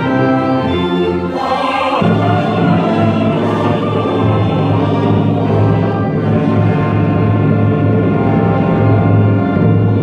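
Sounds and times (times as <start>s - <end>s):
choir and orchestra performing: 0.0s - 10.0s.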